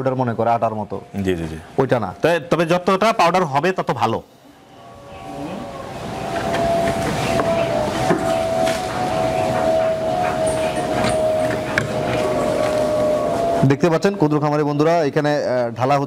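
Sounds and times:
machine drone: 0.0s - 14.4s.

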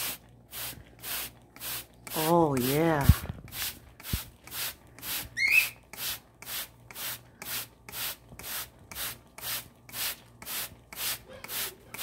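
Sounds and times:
spray bottle misting: 0.0s - 12.0s
cockatiel chirp: 5.4s - 5.8s.

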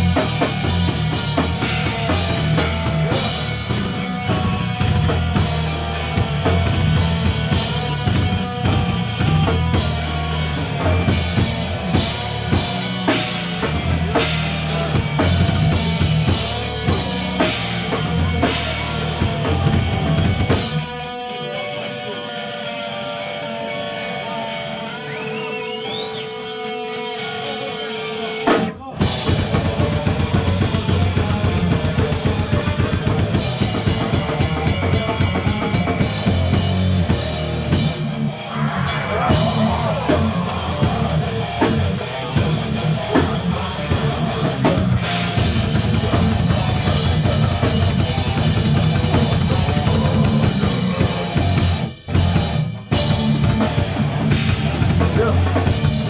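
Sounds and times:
distorted electric guitar ringing: 0.0s - 28.4s, 30.2s - 56.0s
heavy hardcore band playing live: 0.0s - 56.0s
guitar rising whine: 34.7s - 51.8s.

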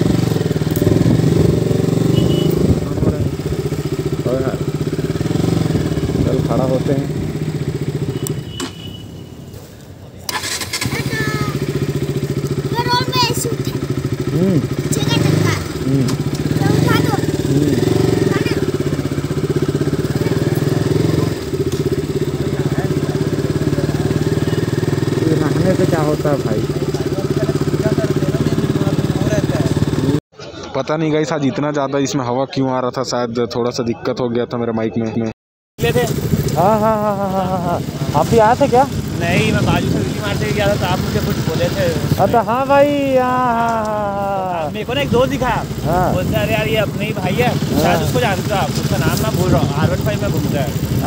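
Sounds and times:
motorcycle engine idling: 0.0s - 8.9s, 10.3s - 30.2s, 35.8s - 51.0s
faint crowd voices: 30.4s - 34.7s.

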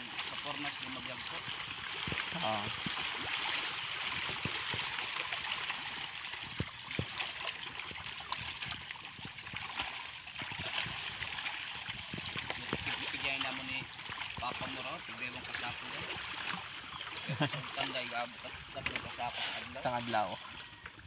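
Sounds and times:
fish splashing in water: 0.0s - 21.0s.

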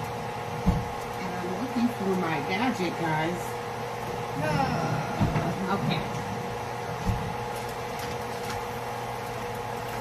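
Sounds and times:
potatoes frying in a skillet: 0.0s - 6.0s
kitchen appliance motor hum: 0.0s - 10.0s.

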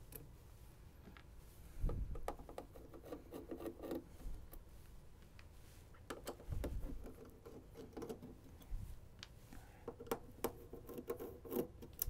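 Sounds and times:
hands tapping and rubbing metal cover: 1.9s - 4.7s, 5.4s - 12.0s.

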